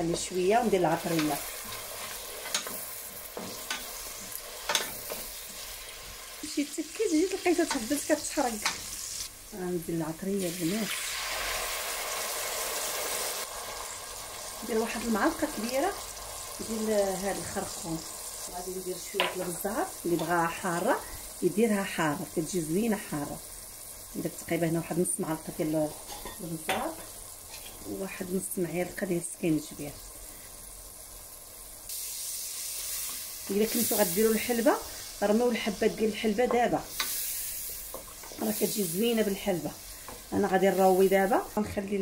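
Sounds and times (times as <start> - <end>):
onions sizzling in oil: 0.0 - 42.0.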